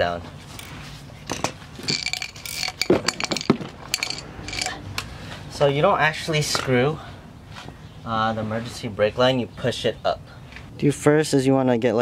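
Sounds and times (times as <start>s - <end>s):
metal hand tools clinking: 1.3s - 4.8s.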